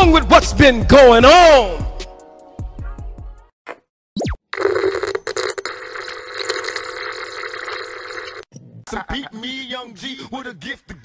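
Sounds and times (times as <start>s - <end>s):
electronic static buzz and hiss: 4.6s - 8.4s
static crackles: 4.6s - 8.4s.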